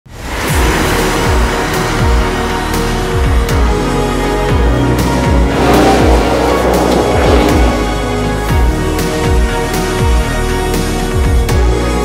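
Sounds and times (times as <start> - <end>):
soundtrack music: 0.2 - 12.0.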